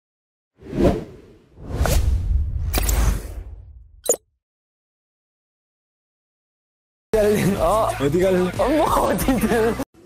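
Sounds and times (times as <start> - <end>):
whoosh: 0.6 - 4.0.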